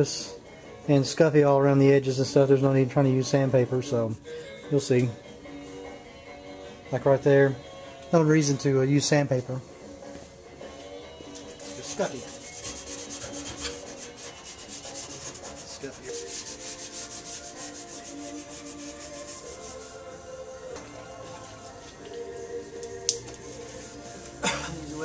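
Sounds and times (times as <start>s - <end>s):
abrasive pad rubbing metal: 11.6s - 20.1s.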